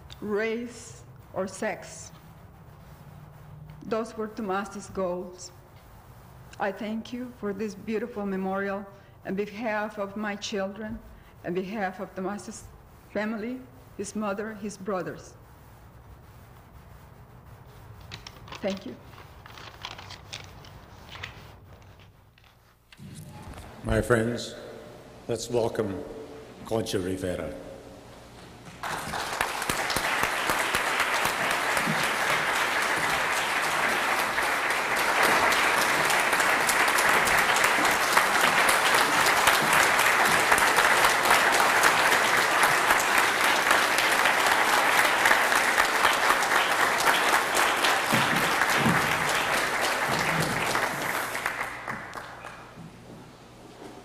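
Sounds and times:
audience applauding: 28.7 - 52.8.

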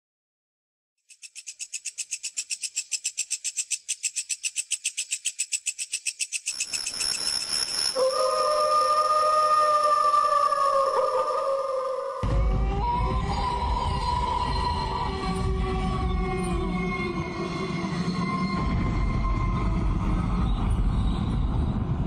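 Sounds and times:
insects chirring: 1.0 - 10.5
wolf howling: 8.0 - 17.4.

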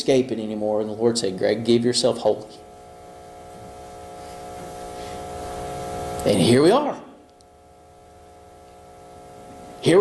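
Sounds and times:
buzzing hum: 0.0 - 10.0.

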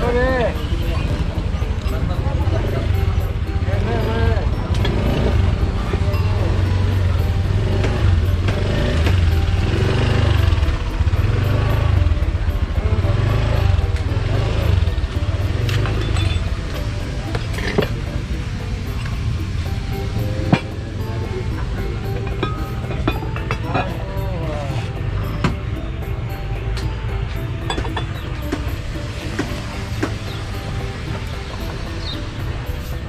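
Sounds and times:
passing traffic rumble: 0.0 - 33.0
people's voices: 0.0 - 33.0.

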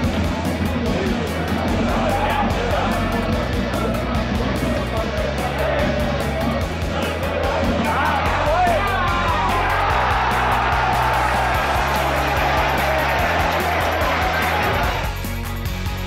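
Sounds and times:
rock background music: 0.0 - 16.0
stadium crowd shouting and cheering: 0.0 - 16.0.

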